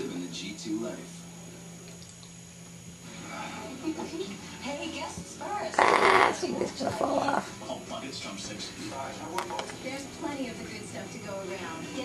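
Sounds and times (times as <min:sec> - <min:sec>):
kitten hissing: 0:05.8 - 0:07.5.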